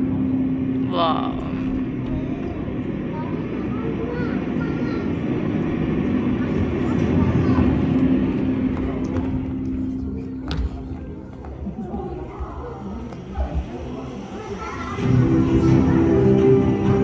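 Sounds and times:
low rumble with droning hum: 0.0 - 13.8
faint children's voices: 0.0 - 17.0.

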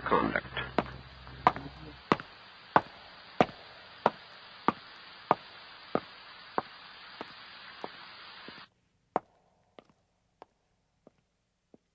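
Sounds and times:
steady hiss: 0.0 - 10.8
sharp knocks: 0.8 - 6.1.

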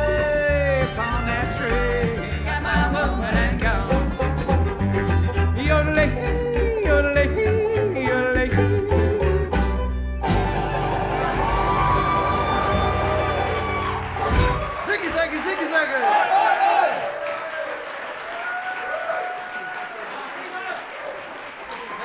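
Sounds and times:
banjo: 0.0 - 14.7
fiddle: 0.0 - 14.7
acoustic guitar: 0.0 - 14.8
mandolin: 0.0 - 14.8.

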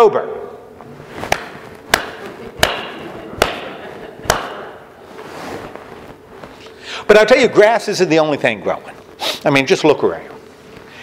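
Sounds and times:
sharp knocks: 1.3 - 4.8.

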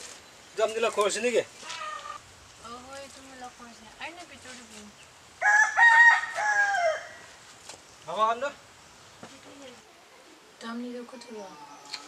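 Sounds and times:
rooster crowing: 5.4 - 7.3.

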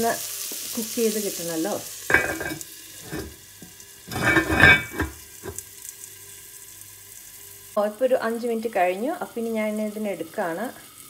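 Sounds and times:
food sizzling in a pot: 0.0 - 11.0
pot lid noise: 2.1 - 3.4, 4.1 - 5.6.

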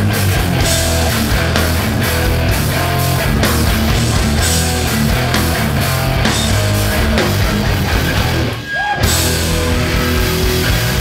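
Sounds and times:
punk band playing live: 0.0 - 11.0.

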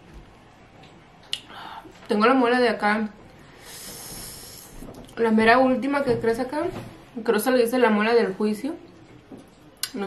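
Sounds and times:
woman hissing breath through teeth: 3.6 - 4.7.

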